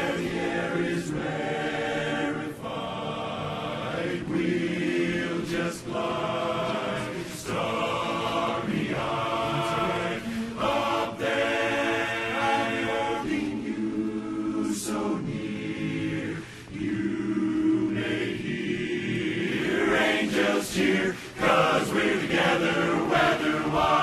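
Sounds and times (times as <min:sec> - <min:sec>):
men's chorus singing in harmony: 0:00.0 - 0:24.0.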